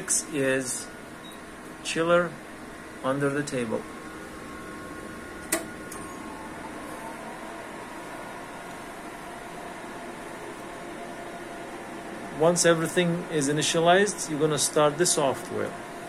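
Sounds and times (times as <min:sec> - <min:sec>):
faint whining tones: 0:00.0 - 0:14.5
laboratory equipment humming: 0:00.0 - 0:16.0.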